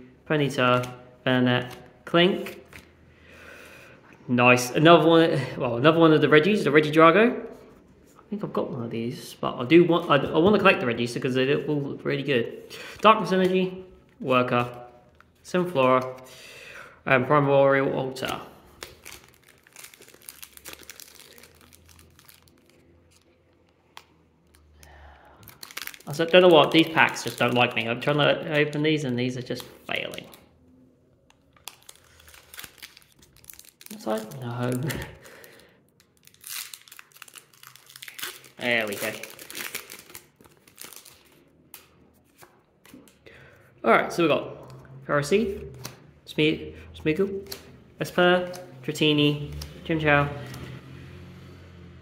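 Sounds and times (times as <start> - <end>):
foil wrappers crinkling: 18.7 - 23.6, 25.4 - 28.8, 31.4 - 41.5.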